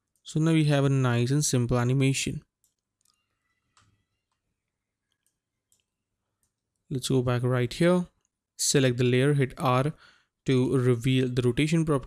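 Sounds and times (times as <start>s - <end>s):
man speaking: 0.3s - 2.4s, 6.9s - 12.0s
computer mouse clicks: 2.6s - 6.9s.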